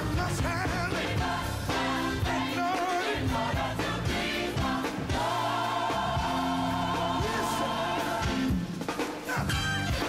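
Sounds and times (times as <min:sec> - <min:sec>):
band accompaniment: 0:00.0 - 0:10.0
gospel choir singing: 0:00.0 - 0:10.0.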